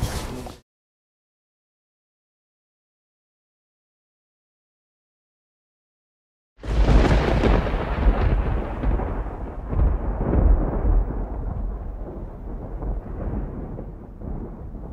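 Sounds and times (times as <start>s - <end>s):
deep loud rumble: 6.6s - 14.9s.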